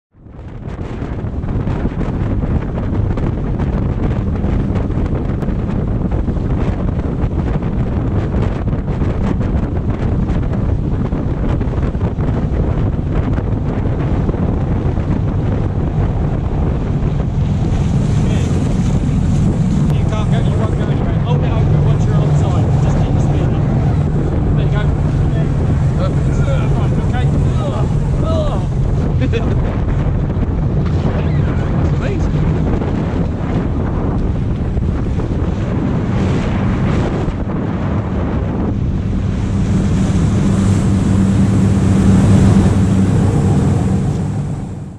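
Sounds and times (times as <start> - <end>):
boat engine drone: 0.1 - 44.9
wind buffeting on microphone: 0.1 - 44.9
rushing water: 1.0 - 44.9.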